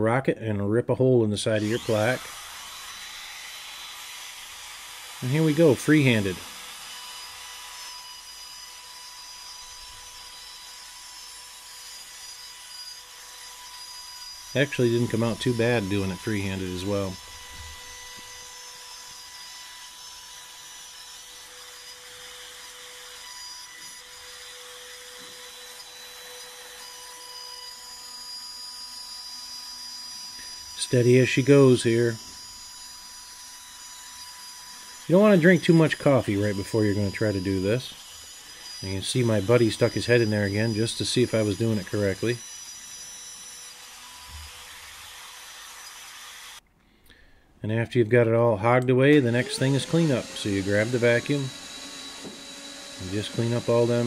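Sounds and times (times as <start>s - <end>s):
router whining cutting wood: 1.5s - 46.6s, 48.7s - 54.0s.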